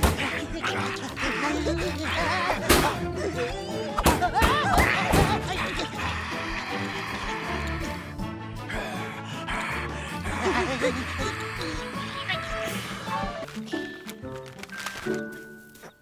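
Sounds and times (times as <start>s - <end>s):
wordless cartoon cries: 0.0s - 13.4s
cartoon background music: 0.0s - 16.0s.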